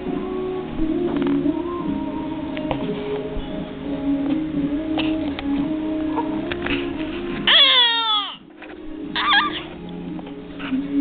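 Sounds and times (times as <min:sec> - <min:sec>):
background music: 0:00.0 - 0:11.0
baby squealing: 0:07.5 - 0:08.4, 0:09.2 - 0:09.7.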